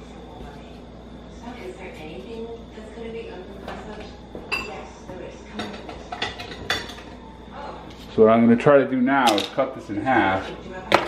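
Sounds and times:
low steady hum: 0.0 - 11.0
kitchenware clinking: 4.4 - 7.2, 9.2 - 9.6.

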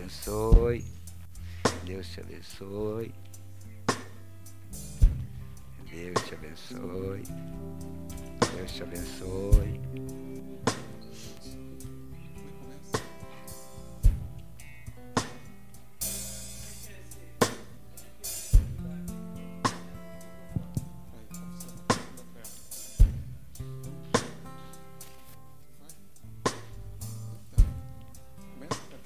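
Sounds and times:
drum hits: 0.5 - 0.8, 4.8 - 5.5, 8.1 - 8.8, 9.5 - 9.8, 14.0 - 14.4, 22.9 - 23.4
worship band playing: 6.0 - 14.3.

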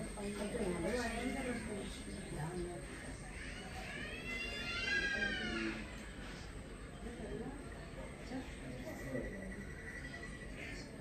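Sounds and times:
long high-pitched cry: 3.4 - 6.0.

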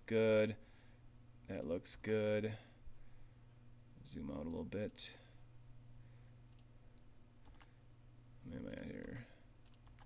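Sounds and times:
electrical hum: 0.0 - 10.0
computer mouse clicks: 6.5 - 7.7, 9.0 - 10.0.

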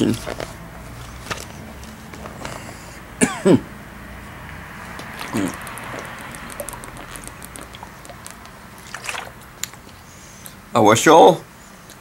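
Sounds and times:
man coughing: 3.2 - 3.7.

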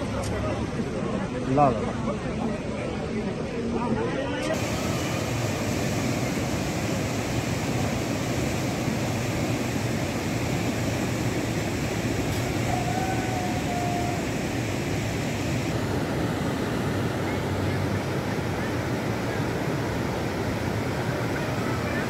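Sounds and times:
river rushing: 4.5 - 22.0.

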